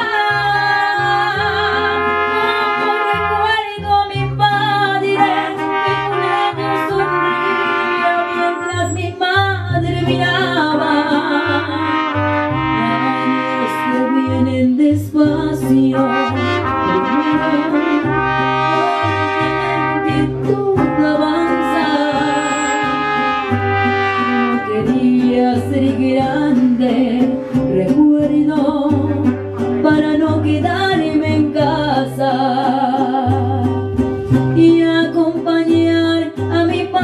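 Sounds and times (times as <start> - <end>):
plucked bass line: 0.0 - 37.0
strummed guitars: 0.0 - 37.0
trumpets playing melody: 1.7 - 9.2, 11.3 - 14.7, 15.6 - 25.4, 29.1 - 30.0.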